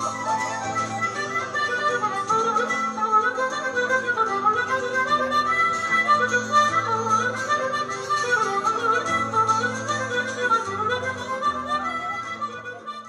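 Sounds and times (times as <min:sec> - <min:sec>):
acoustic guitar accompaniment: 0:00.0 - 0:13.0
harmonica melody: 0:00.0 - 0:13.0.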